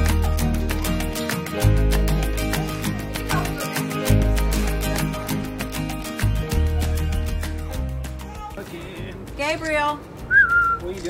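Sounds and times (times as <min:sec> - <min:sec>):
person whistling: 0:10.3 - 0:10.9.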